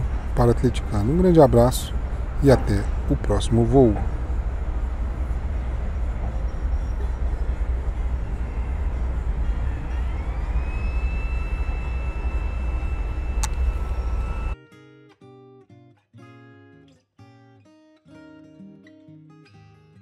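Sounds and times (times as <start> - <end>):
outdoor rumble and hiss: 0.0 - 14.6
thin whistle-like tone: 6.2 - 14.6
strummed acoustic guitar music: 14.6 - 20.0.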